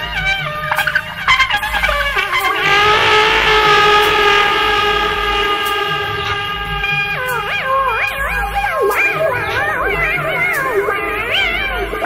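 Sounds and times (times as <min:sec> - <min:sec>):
electric trumpet: 0:00.0 - 0:12.0
electronic backing beat: 0:01.8 - 0:12.0.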